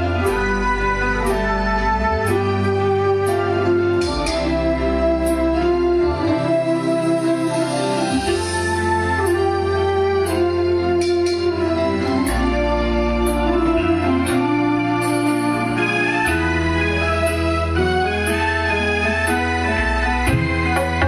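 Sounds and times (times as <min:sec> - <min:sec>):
bass line: 0:00.0 - 0:21.0
organ-like keyboard chords: 0:00.0 - 0:21.0.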